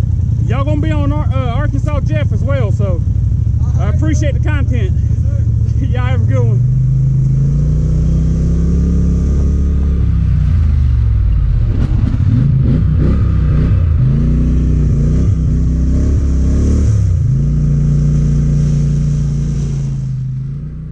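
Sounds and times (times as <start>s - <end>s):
atv engine running: 0.0s - 20.9s.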